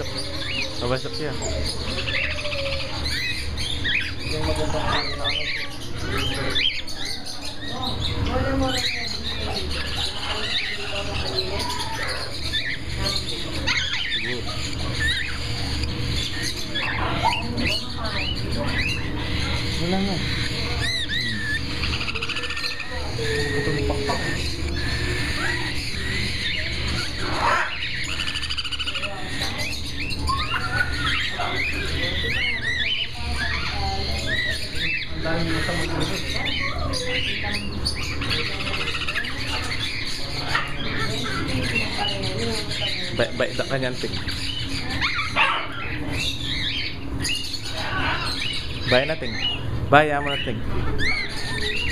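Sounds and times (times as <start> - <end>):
birds chirping and trilling: 0.0 - 51.9
parrots calling: 0.0 - 51.9.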